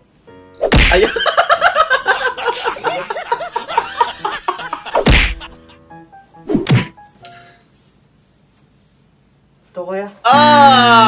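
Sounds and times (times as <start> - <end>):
faint music: 0.0 - 11.0
smack: 0.6 - 1.1, 5.0 - 5.5, 6.5 - 7.0
loud thump: 0.7 - 1.0, 5.0 - 5.5, 6.6 - 7.0.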